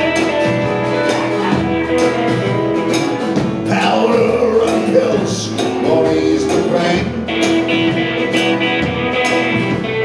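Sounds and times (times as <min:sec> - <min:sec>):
electric guitars: 0:00.0 - 0:10.0
live band playing: 0:00.0 - 0:10.0.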